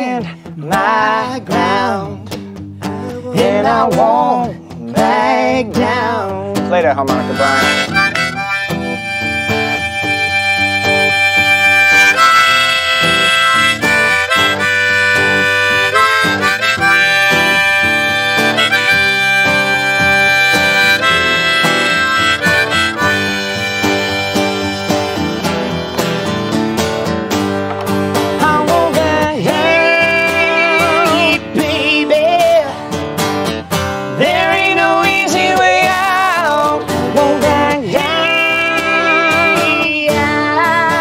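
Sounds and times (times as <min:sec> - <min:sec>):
man singing: 0:00.0 - 0:08.1, 0:28.4 - 0:32.9, 0:34.1 - 0:41.0
strummed acoustic guitar: 0:00.0 - 0:41.0
harmonica bending notes: 0:07.0 - 0:41.0.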